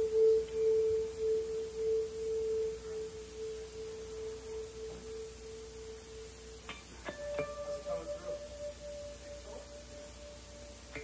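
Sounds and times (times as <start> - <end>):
electric guitar note ringing: 0.0 - 11.0.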